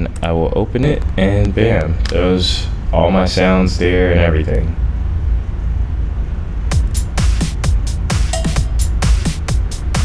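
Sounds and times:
steady low hum: 0.0s - 10.0s
programmed drum beat: 6.7s - 10.0s.

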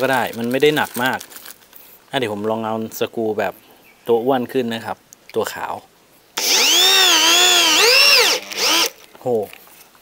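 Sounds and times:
electric drill driving screw: 6.4s - 9.0s.

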